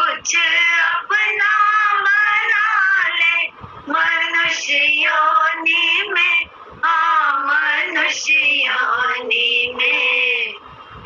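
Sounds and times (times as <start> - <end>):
woman singing: 0.0 - 10.6.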